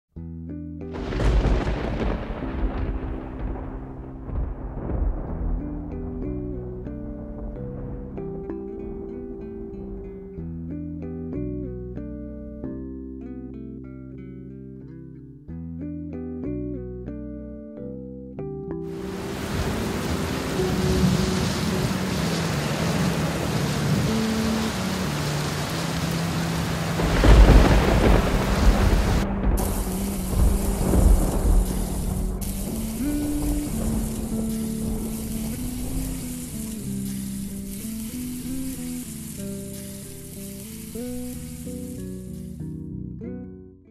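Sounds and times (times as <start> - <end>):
light background music: 0.2 - 43.6
rain sound effect: 0.9 - 10.8, 18.8 - 43.0
loud thunderclap: 1.0 - 10.1, 19.0 - 24.8, 25.5 - 37.7
steady sizzling hiss: 1.0 - 10.4, 18.9 - 43.0.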